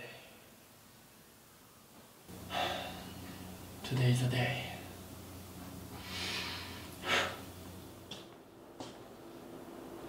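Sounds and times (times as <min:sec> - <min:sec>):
low steady hum: 0:00.0 - 0:10.0
man breathing in deeply: 0:02.5 - 0:03.4, 0:05.9 - 0:07.5.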